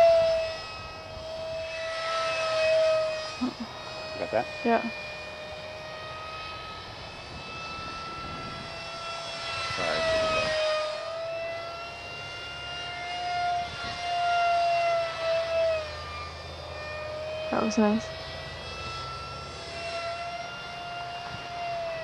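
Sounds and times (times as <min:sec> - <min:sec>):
model plane motor whining: 0:00.0 - 0:22.0.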